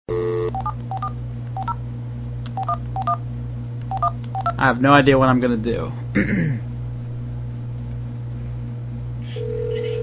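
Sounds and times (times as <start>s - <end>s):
telephone dial tone: 0.1s - 1.8s, 9.4s - 10.0s
low hum: 0.1s - 10.0s.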